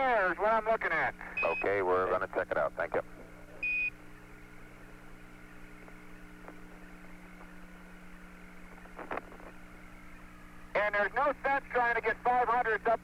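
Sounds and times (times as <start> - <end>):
radio channel hum and hiss: 0.0 - 13.0
short high radio beep: 1.4 - 1.8.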